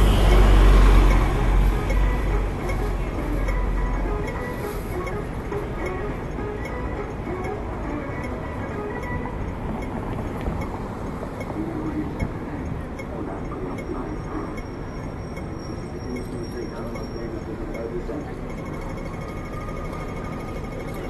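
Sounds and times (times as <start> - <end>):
bus engine rumble passing: 0.0 - 21.0
street traffic noise: 0.0 - 21.0.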